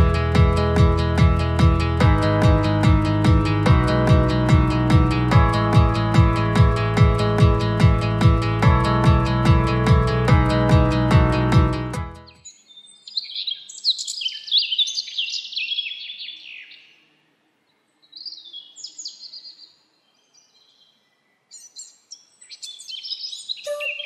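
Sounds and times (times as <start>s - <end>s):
small birds chirping: 12.2s - 17.1s, 18.0s - 24.0s.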